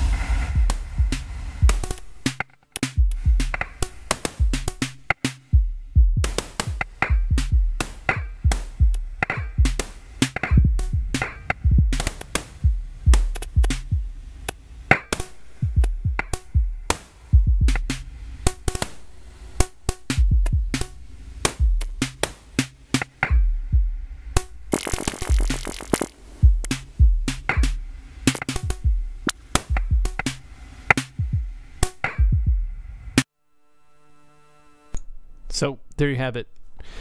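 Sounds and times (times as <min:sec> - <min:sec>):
deep kick drums: 0:00.0 - 0:02.0, 0:03.0 - 0:03.7, 0:04.4 - 0:04.8, 0:05.5 - 0:14.1, 0:15.6 - 0:18.0, 0:20.1 - 0:20.9, 0:21.6 - 0:22.2, 0:23.3 - 0:27.9, 0:28.5 - 0:30.3, 0:31.1 - 0:31.6, 0:32.2 - 0:32.8
burst of hiss: 0:00.0 - 0:02.4
clicky percussion hits: 0:06.2 - 0:17.0, 0:24.4 - 0:32.5.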